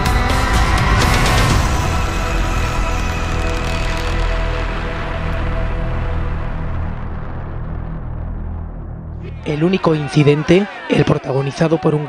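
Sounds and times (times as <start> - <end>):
dark droning soundtrack music: 0.0 - 9.9.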